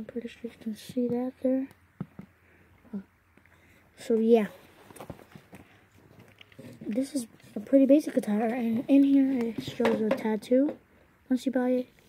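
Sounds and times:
person speaking: 0:00.0 - 0:01.9, 0:03.9 - 0:05.4, 0:06.5 - 0:12.0.

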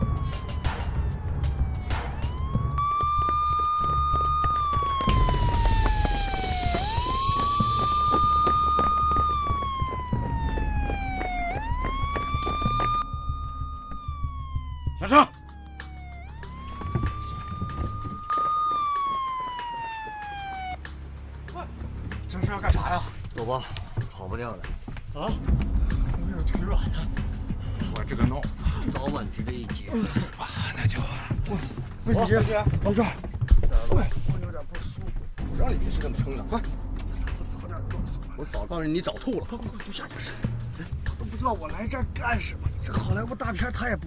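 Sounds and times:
police siren wailing: 0:00.0 - 0:21.5.

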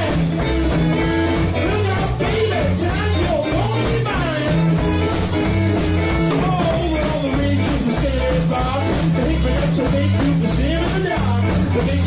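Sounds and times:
drum kit: 0:00.0 - 0:12.0
electric guitar: 0:00.0 - 0:12.0
walking bass line: 0:00.0 - 0:12.0.

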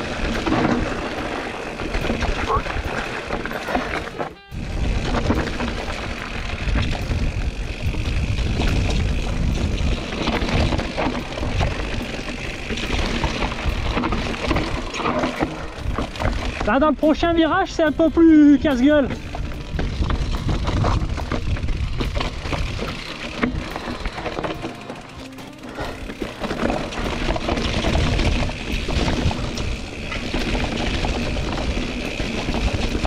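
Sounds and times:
tyres crunching over stones: 0:00.0 - 0:17.9, 0:18.8 - 0:33.0
wind rumbling on microphone: 0:00.0 - 0:24.5, 0:25.9 - 0:33.0
bike clattering: 0:00.0 - 0:33.0.

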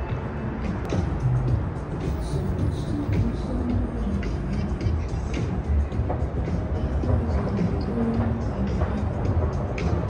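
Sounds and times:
low rumble of traffic: 0:00.0 - 0:10.0
music playing: 0:00.0 - 0:10.0.

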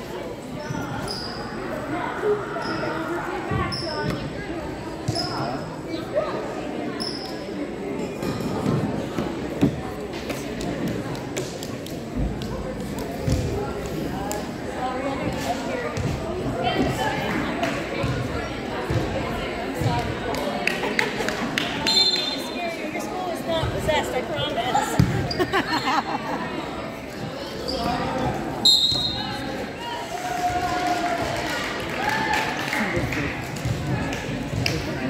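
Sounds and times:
voices chattering in a gym: 0:00.0 - 0:35.0.

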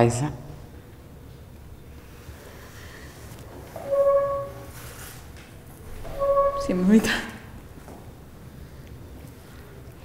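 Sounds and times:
high sustained note: 0:03.8 - 0:04.9, 0:05.9 - 0:07.1.

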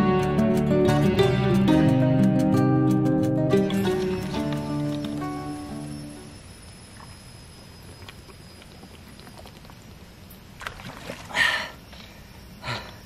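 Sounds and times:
quiet outdoor background: 0:00.0 - 0:13.0.

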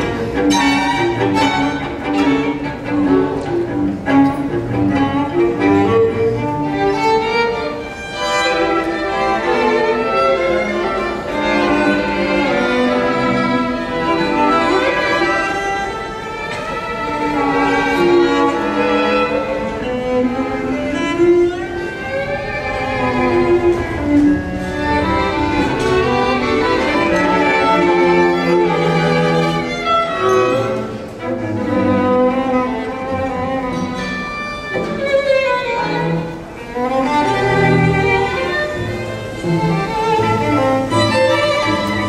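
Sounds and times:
string quartet playing tango: 0:00.0 - 0:42.0.

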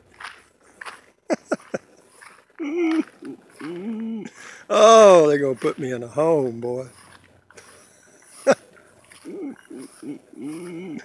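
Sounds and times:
man laughing: 0:01.3 - 0:02.0, 0:02.6 - 0:05.0, 0:08.0 - 0:08.6, 0:09.2 - 0:11.0.

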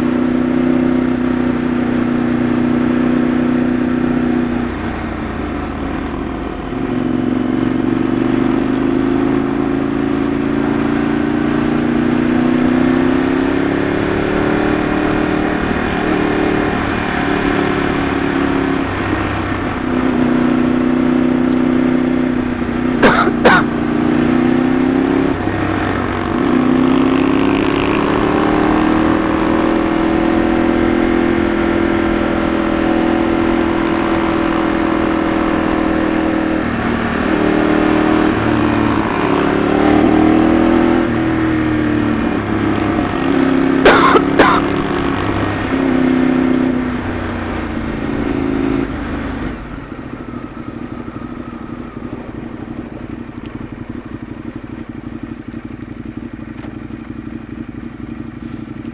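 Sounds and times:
motorcycle engine under load: 0:41.0 - 0:58.9.

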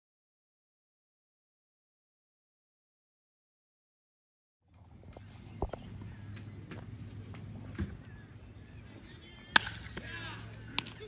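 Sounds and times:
low crowd hum: 0:04.7 - 0:11.0.

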